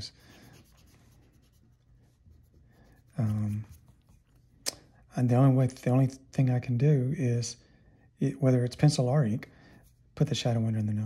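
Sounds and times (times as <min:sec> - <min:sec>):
pencil scratching on paper: 0:00.0 - 0:04.4.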